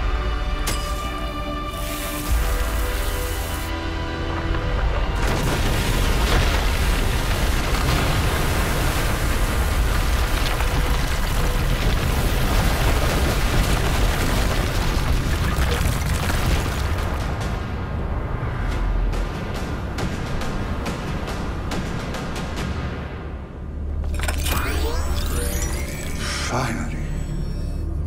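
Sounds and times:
dramatic film score: 0.0 - 28.0.

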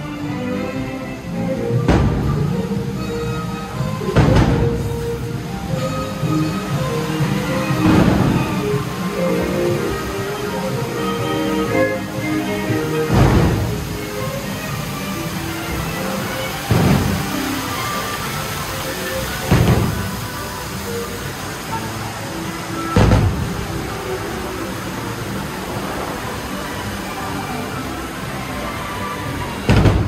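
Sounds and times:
ride music: 0.0 - 30.0
rushing flume water: 0.0 - 30.0
low fireworks booms: 1.8 - 2.6, 4.1 - 5.2, 7.8 - 8.8, 16.7 - 17.5, 19.5 - 20.4, 23.0 - 23.9, 29.7 - 30.0.

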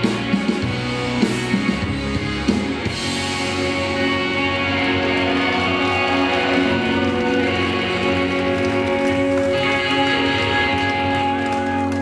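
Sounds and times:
electric guitars ringing chord: 1.9 - 12.0.

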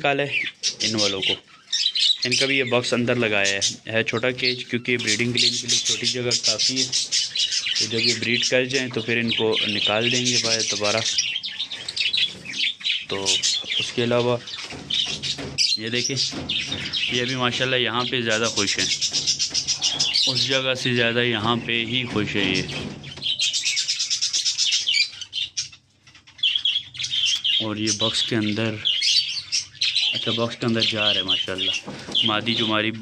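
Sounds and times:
budgerigars chattering: 0.0 - 33.0
lovebirds chirping: 0.0 - 33.0.

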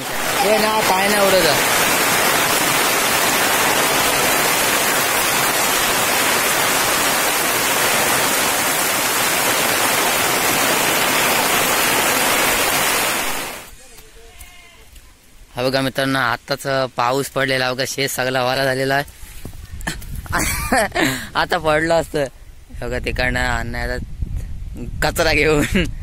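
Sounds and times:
heavy rain pouring: 0.0 - 13.8.

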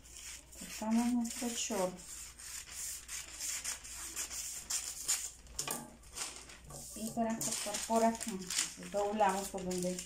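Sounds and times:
paper rustling on table: 0.0 - 10.0
scissors snipping paper: 6.1 - 10.0.

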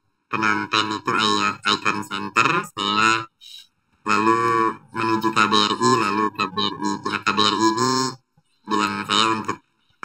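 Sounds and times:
man speaking with voice disguise: 0.3 - 9.6.

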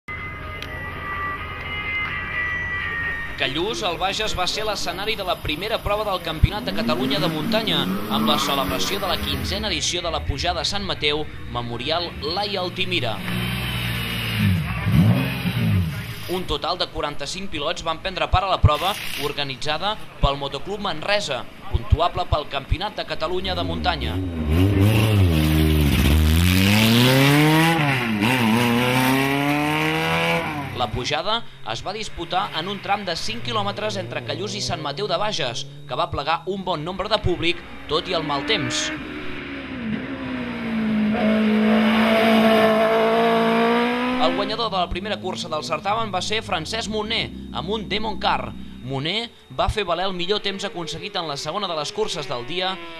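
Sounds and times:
race car engine revving: 3.9 - 16.5, 23.2 - 31.0, 32.0 - 52.9.

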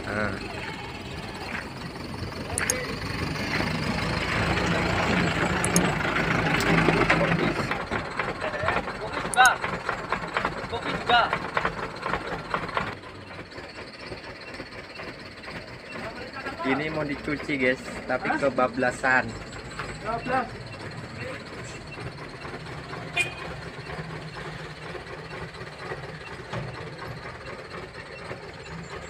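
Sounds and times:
motor vehicle engine running: 0.0 - 29.0
scattered clicks: 2.4 - 7.8, 9.2 - 9.9.

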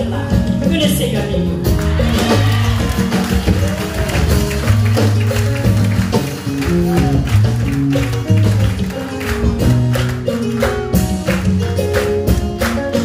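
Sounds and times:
bass line: 0.0 - 13.0
live band music: 0.0 - 13.0
drum and percussion hits: 0.5 - 13.0.

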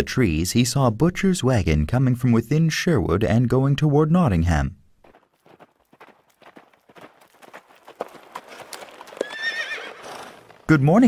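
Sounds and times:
horse hooves clip-clopping: 5.0 - 11.0
horse whinnying: 8.4 - 10.6.

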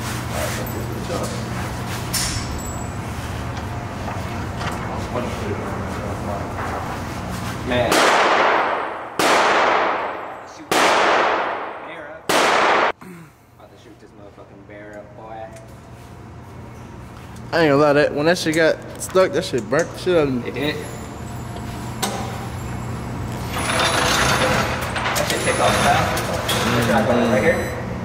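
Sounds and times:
steady low hum: 0.0 - 28.0
gunshots with ringing echo: 7.9 - 12.9.

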